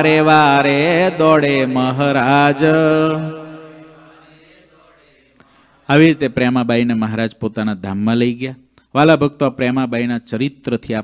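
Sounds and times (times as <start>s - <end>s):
man chanting: 0.0s - 4.8s, 5.8s - 11.0s.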